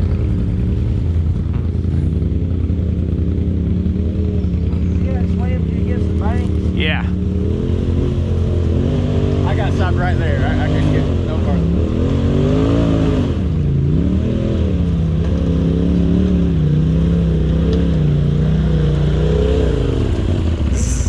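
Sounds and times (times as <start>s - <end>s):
engine revving: 0.0s - 21.0s
low engine hum: 0.0s - 21.0s.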